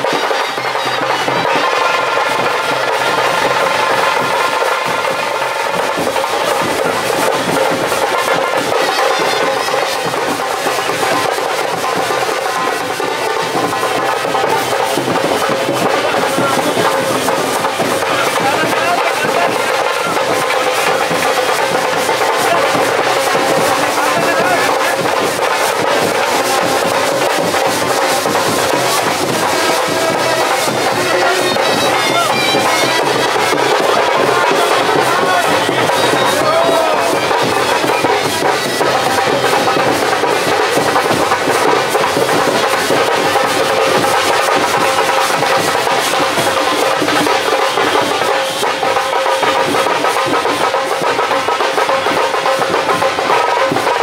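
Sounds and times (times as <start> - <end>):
crowd voices: 0.0 - 54.0
drums beating: 0.0 - 54.0
droning wind instrument melody: 28.6 - 39.4.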